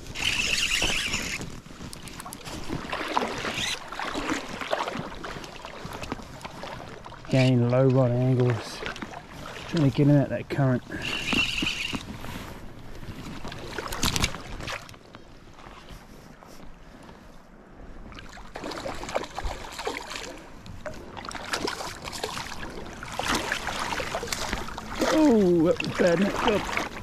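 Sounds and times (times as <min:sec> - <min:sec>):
fish splashing in shallow water: 0:00.0 - 0:16.5, 0:18.0 - 0:27.0.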